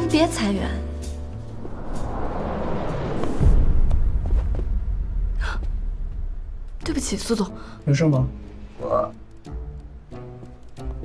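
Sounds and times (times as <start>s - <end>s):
low rumble: 0.6s - 7.3s.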